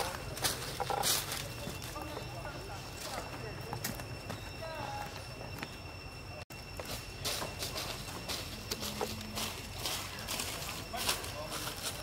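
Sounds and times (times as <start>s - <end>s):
steady high-pitched tone: 0.0s - 12.0s.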